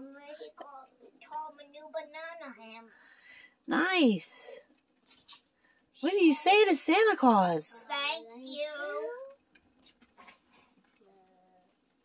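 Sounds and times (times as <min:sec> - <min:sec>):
child's drawn-out voice: 0:07.9 - 0:09.4.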